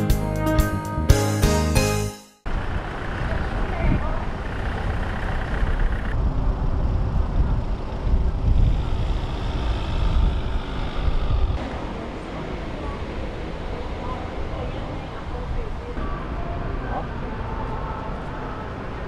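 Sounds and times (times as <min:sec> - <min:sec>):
road traffic rumbling past: 0:02.5 - 0:19.0
indistinct voices: 0:11.6 - 0:19.0.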